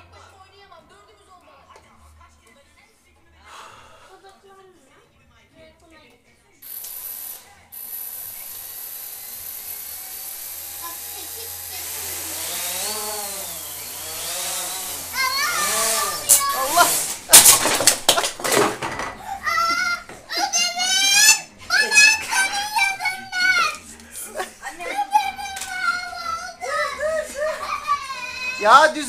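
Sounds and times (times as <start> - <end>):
drone motors whining: 6.7 - 17.1.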